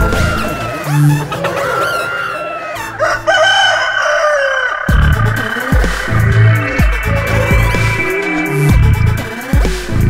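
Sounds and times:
rooster crowing: 0:00.0 - 0:08.6
dub music beat: 0:04.9 - 0:10.0.

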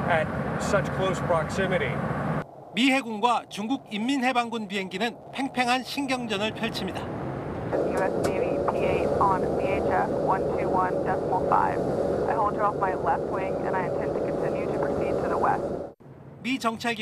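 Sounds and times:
jet cabin engine noise: 0:03.8 - 0:16.0
woman speaking over headset: 0:07.8 - 0:15.6.

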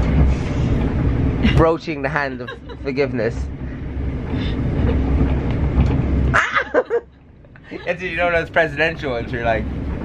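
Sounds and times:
train rumble: 0:00.0 - 0:10.0
person laughing: 0:06.3 - 0:08.0.

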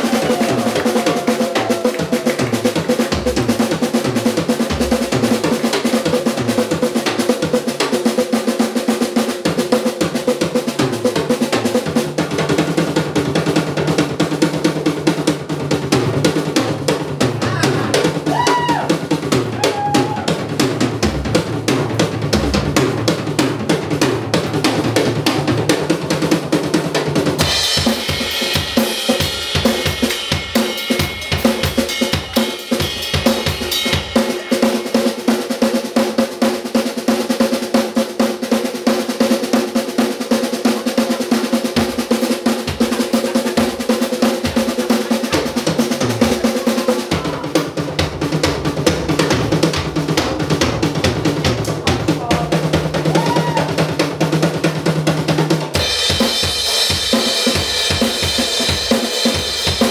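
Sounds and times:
drum kit solo: 0:00.0 - 0:59.9.

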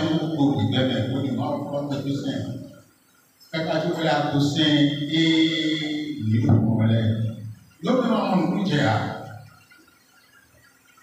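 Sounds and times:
man's voice: 0:03.6 - 0:09.2.

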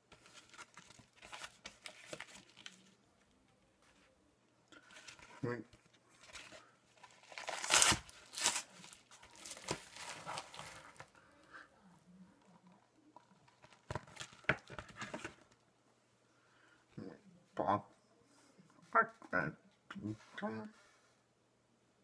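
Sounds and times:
paper and plastic crinkling: 0:00.1 - 0:03.0, 0:04.8 - 0:11.2, 0:12.6 - 0:15.6
paper envelope tearing: 0:07.0 - 0:11.0.

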